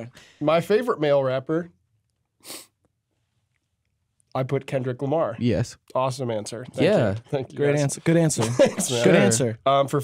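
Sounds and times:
person breathy puff: 2.4 - 2.7.

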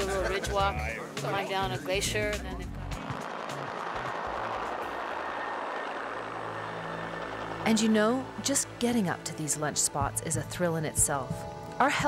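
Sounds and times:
helicopter rotor noise: 1.4 - 10.8.

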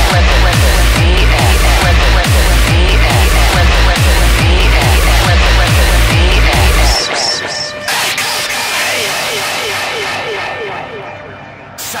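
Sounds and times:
industrial electronic music: 0.0 - 12.0.

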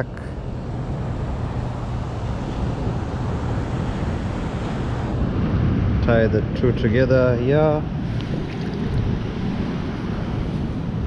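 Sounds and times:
wind rushing over microphone: 0.0 - 11.0
beach surf: 0.3 - 11.0.

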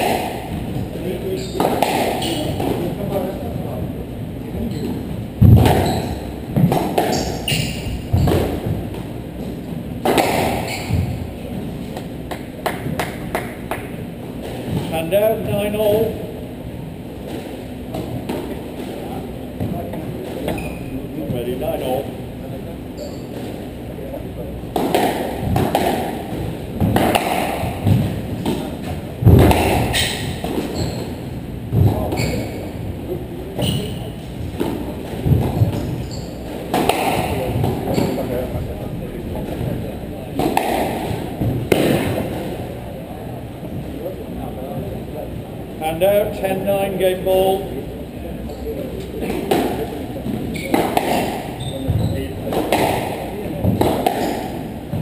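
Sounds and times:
squash ball cracking off rackets: 10.0 - 11.2, 24.7 - 30.8, 36.6 - 38.3, 40.4 - 42.5, 50.6 - 55.0.

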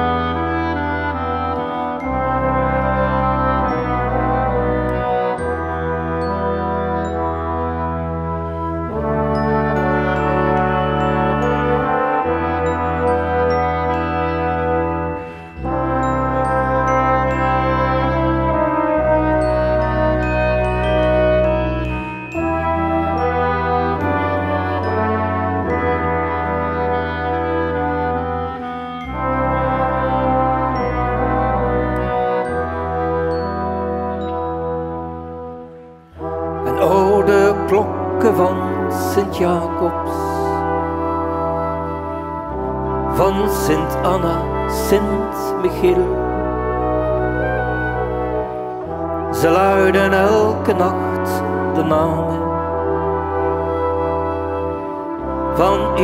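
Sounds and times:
brass ensemble chords: 0.0 - 56.0
glockenspiel notes: 0.0 - 56.0.

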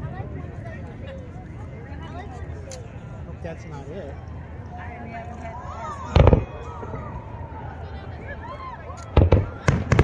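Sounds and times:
fireworks bursting: 9.1 - 10.0.

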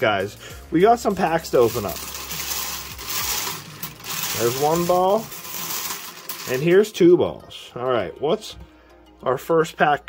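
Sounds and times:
bingo balls rattling in wire cage: 1.2 - 6.9.

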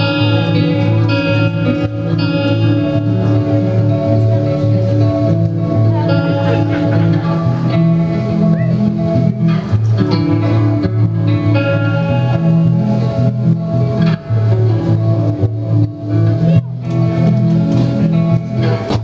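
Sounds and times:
electric guitar strumming chords: 0.0 - 19.0.

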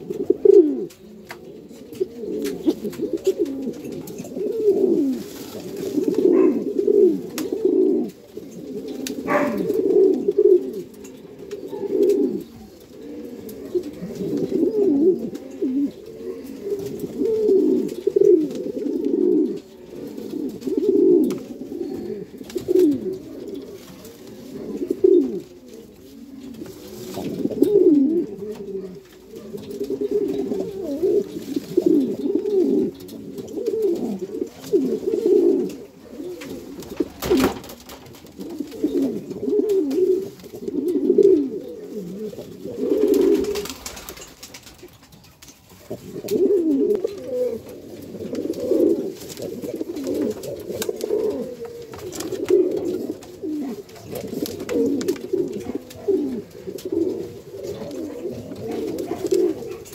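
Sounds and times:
pigeon cooing: 0.0 - 59.9.

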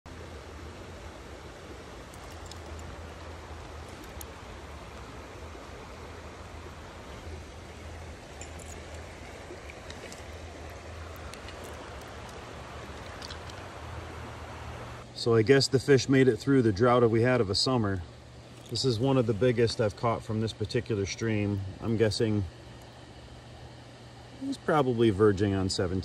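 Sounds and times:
flowing stream water: 0.1 - 15.1
faint clicks: 2.1 - 5.1, 8.4 - 13.7.

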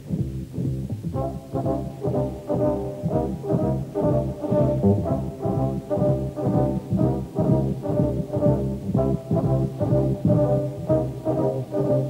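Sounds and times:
deep bass line: 0.0 - 2.3, 3.0 - 9.6
brass ensemble playing jazz chords: 0.1 - 12.0.

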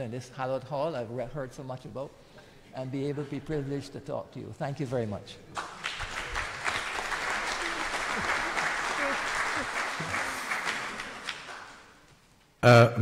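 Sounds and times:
audience applauding: 5.6 - 12.1.

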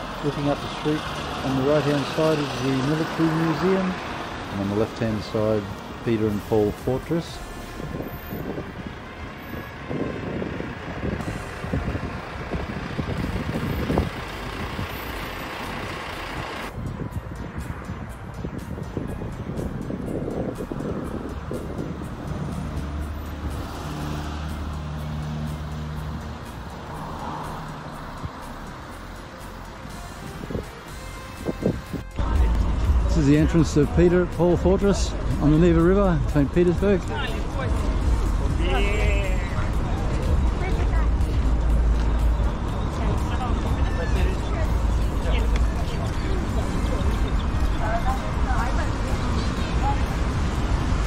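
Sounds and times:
cars driving past: 0.0 - 51.0.

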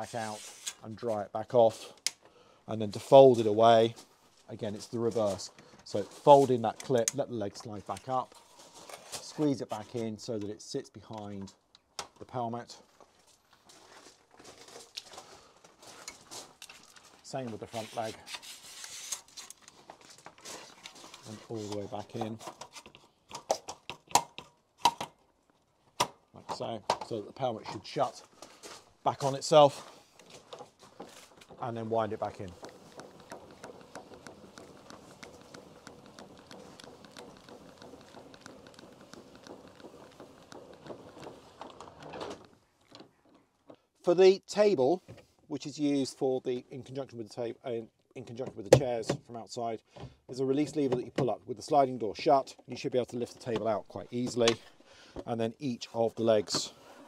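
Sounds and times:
awning leg clicking and rubbing: 30.1 - 43.8.

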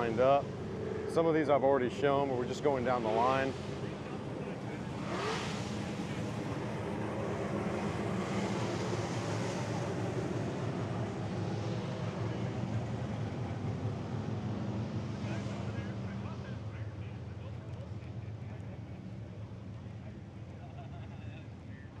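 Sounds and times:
car engines idling: 0.0 - 22.0.

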